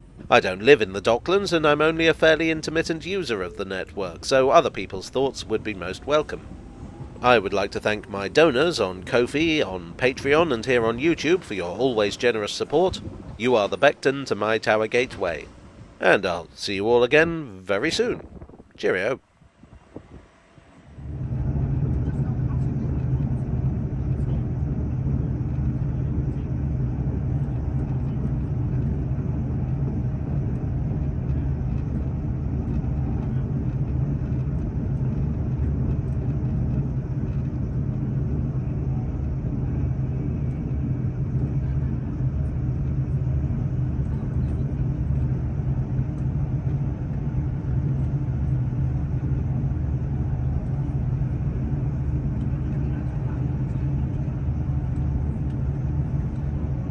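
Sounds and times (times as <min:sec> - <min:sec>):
vehicle interior rumble: 0:00.0 - 0:56.9.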